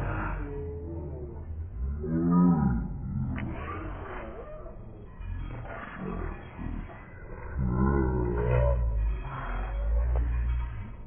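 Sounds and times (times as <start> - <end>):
steady low hum: 0.0 - 11.0
distorted voice roaring: 5.9 - 10.1.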